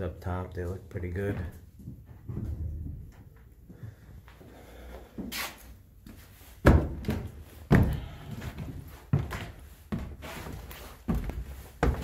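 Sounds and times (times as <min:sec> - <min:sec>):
heavy footsteps on wooden stairs: 0:01.1 - 0:05.4, 0:06.0 - 0:12.0.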